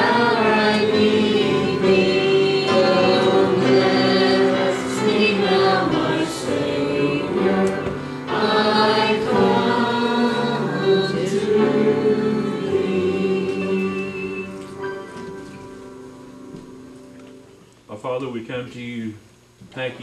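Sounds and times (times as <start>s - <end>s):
congregation singing a hymn: 0.0s - 16.2s.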